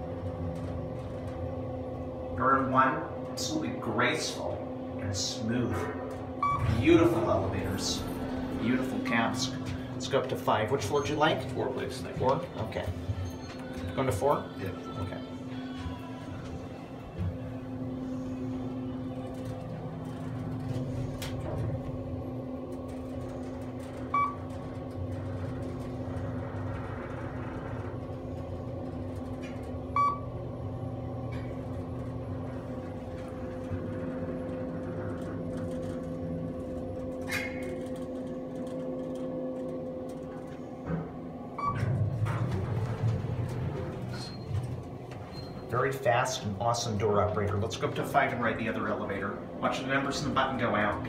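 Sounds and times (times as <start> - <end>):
elevator hum: 0.0 - 51.0
elevator doors opening: 5.2 - 51.0
short elevator beep: 6.4 - 6.8, 24.1 - 24.5, 30.0 - 30.2.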